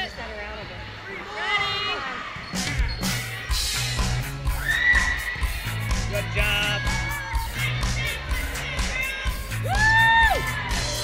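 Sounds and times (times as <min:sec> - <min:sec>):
pop music with singer: 0:03.2 - 0:11.0.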